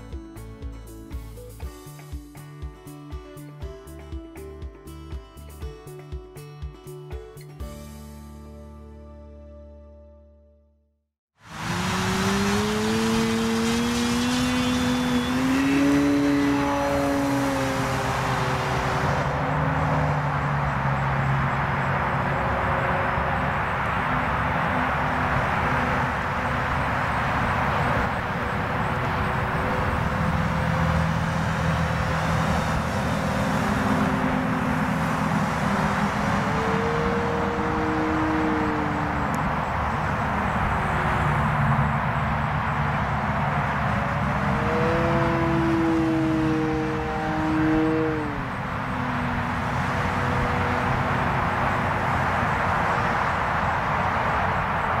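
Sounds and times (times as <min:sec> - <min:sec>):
model plane motor drone: 0:11.5 - 0:23.2, 0:23.9 - 0:41.8, 0:43.5 - 0:53.9.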